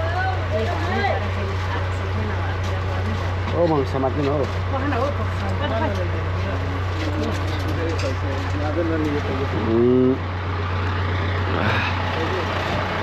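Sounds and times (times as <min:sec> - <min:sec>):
people talking: 0:00.0 - 0:10.2, 0:11.5 - 0:12.8
steady low hum: 0:00.0 - 0:13.0.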